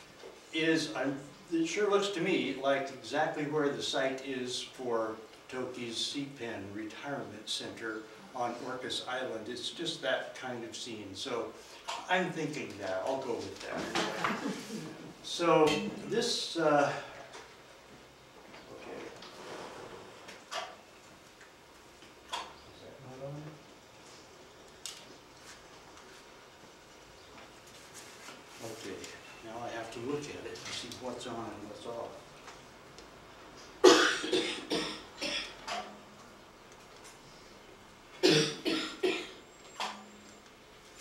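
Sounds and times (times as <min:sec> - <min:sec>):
person coughing: 0:33.8 - 0:35.6, 0:38.2 - 0:39.4.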